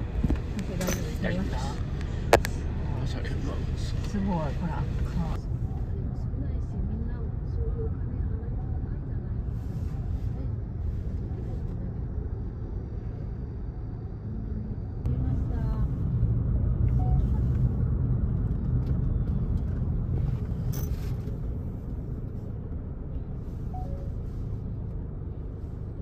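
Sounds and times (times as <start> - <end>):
car road noise rumble: 0.0 - 26.0.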